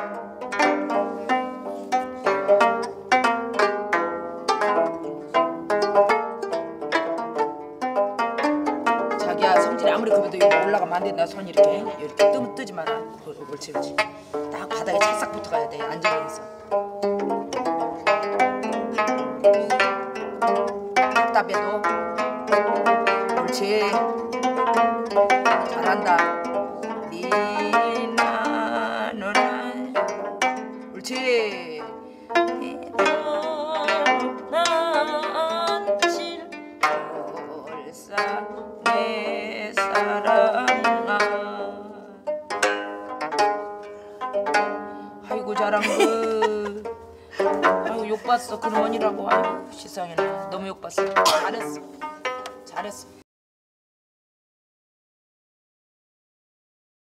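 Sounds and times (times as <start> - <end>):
plucked zithers playing melody: 0.0 - 53.2.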